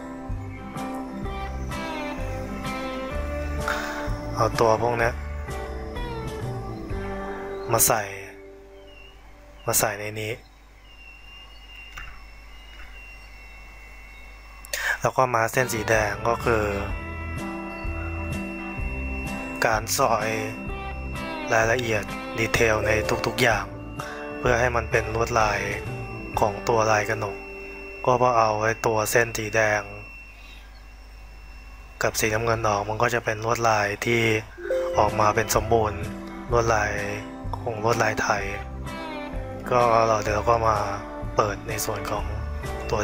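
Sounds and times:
faint high whine: 0:00.0 - 0:38.6
electrical hum and hiss: 0:00.0 - 0:43.0.

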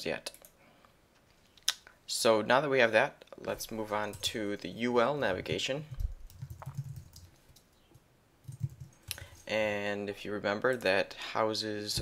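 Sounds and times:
keyboard typing: 0:06.0 - 0:07.7, 0:08.4 - 0:09.2.

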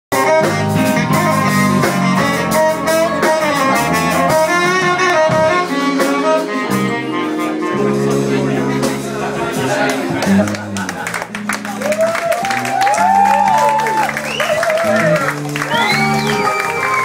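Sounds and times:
bass guitar: 0:00.1 - 0:17.0
drum kit: 0:00.1 - 0:17.0
keyboards: 0:00.1 - 0:17.0
saxophone melody: 0:00.1 - 0:17.0
electric guitar: 0:00.2 - 0:17.0.

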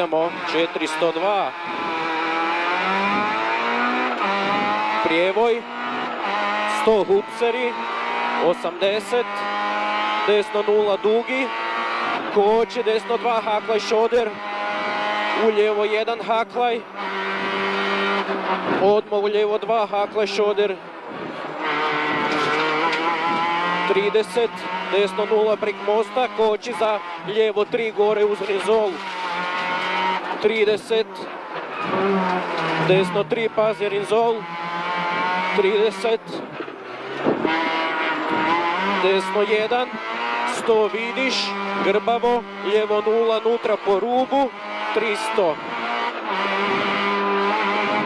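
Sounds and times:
rally car engine from cabin: 0:00.0 - 0:48.0
road noise: 0:00.0 - 0:48.0.

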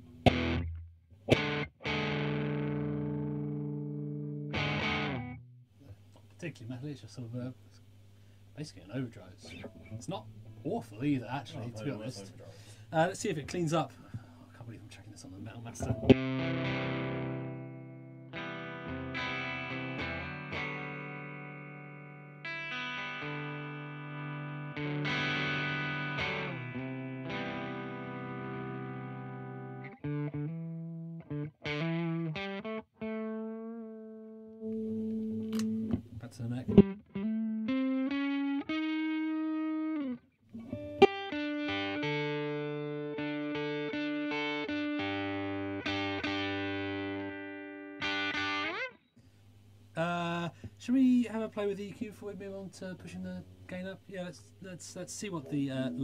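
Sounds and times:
lightly distorted electric guitar: 0:00.0 - 0:08.0, 0:08.8 - 0:14.4, 0:15.0 - 0:56.0.

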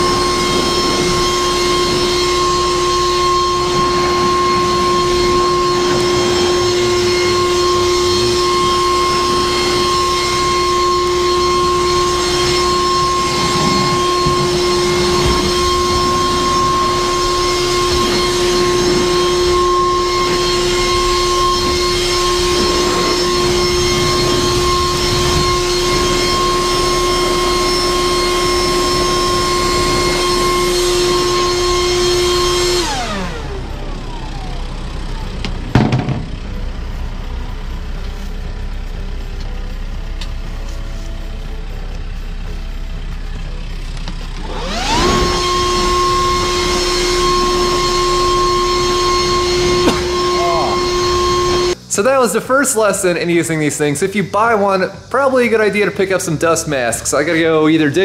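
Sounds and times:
leaf blower blowing: 0:00.0 - 0:52.1
fan spinning down: 0:00.0 - 0:58.0.

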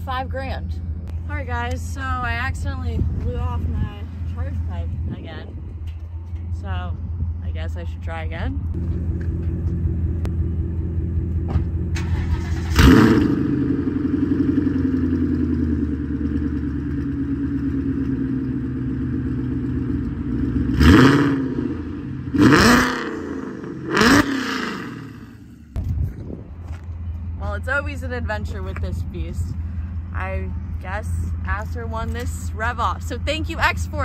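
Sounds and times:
car engine idling and revving: 0:00.0 - 0:34.0.

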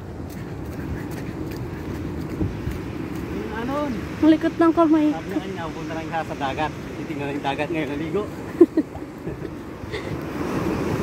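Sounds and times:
wind on microphone: 0:00.0 - 0:11.0
breaking surf: 0:00.5 - 0:11.0.

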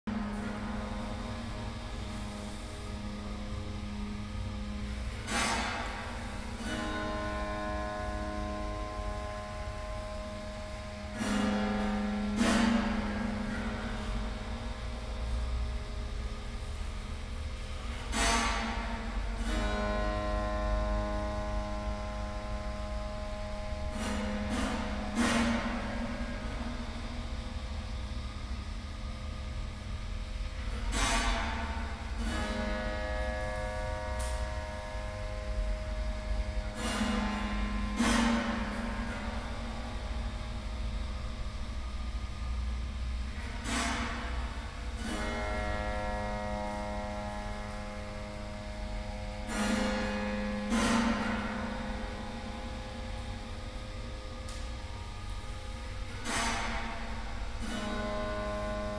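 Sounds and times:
steady low hum: 0:00.0 - 0:58.9
sustained chord of steady tones: 0:00.0 - 0:58.9
plucked piano strings ringing: 0:00.1 - 0:28.7, 0:30.7 - 0:58.9.

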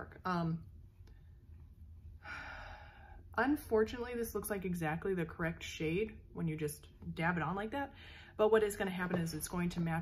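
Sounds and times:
faint low room hum: 0:00.0 - 0:10.0.

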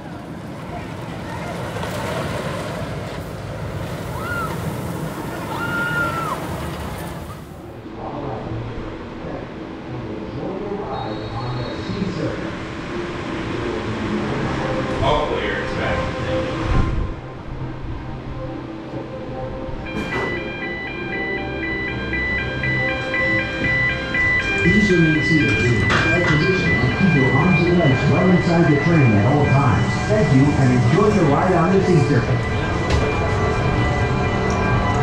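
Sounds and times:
people's voices: 0:00.0 - 0:02.9, 0:24.4 - 0:33.3
background music: 0:11.9 - 0:35.0.

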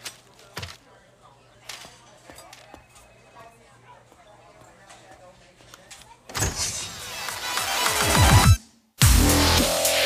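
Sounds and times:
electronic dance music with heavy bass: 0:07.1 - 0:10.0.

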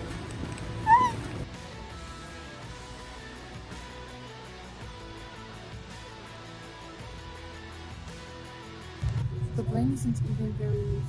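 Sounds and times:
faint background music: 0:00.0 - 0:11.0
woman squealing: 0:00.8 - 0:01.3.

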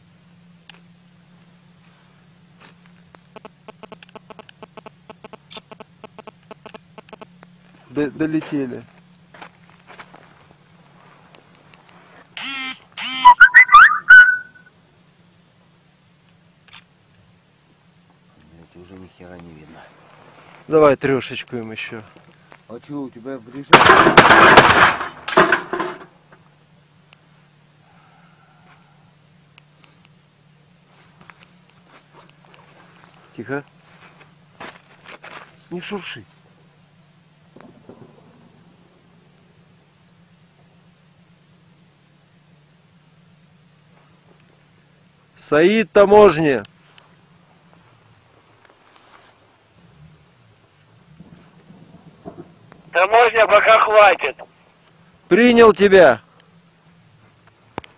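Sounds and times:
faint steady low hum: 0:00.0 - 0:57.9
grenade launcher firing: 0:23.7 - 0:25.8.

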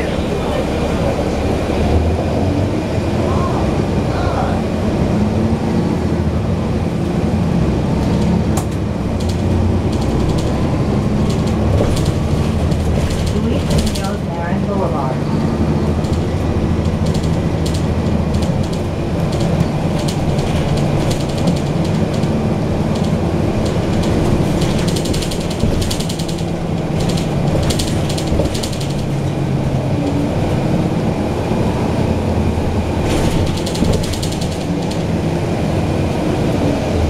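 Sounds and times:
bus body rattles and clicks: 0:00.0 - 0:37.0
diesel bus engine droning: 0:00.0 - 0:37.0.

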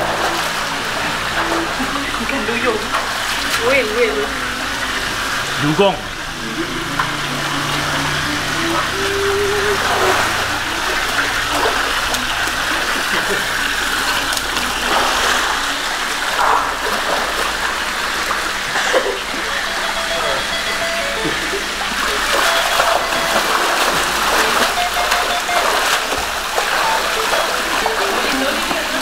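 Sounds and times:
running water: 0:00.0 - 0:29.0
water splashing in pool: 0:00.0 - 0:29.0.

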